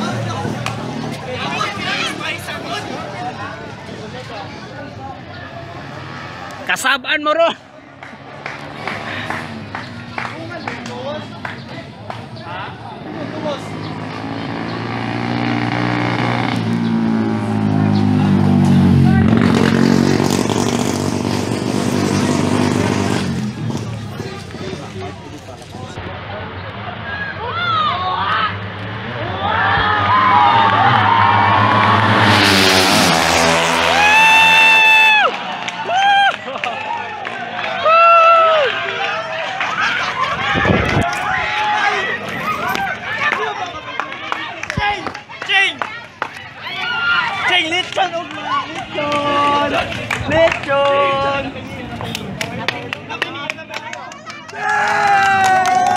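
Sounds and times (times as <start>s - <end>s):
crowd shouting and cheering: 0.0s - 21.0s, 22.4s - 55.9s
motorcycles racing past: 0.0s - 37.8s
long loud shout: 33.8s - 45.8s, 54.3s - 55.9s.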